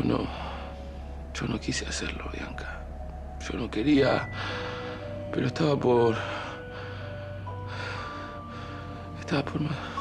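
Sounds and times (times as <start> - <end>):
soft background score: 0.0 - 10.0.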